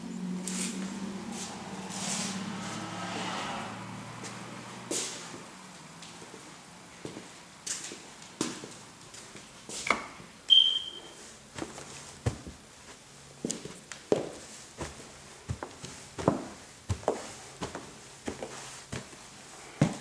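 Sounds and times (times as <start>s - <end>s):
short high squeak: 10.5s - 11.2s
footsteps on carpeted stairs: 11.4s - 20.0s
soft knocks and thuds: 11.6s - 12.6s.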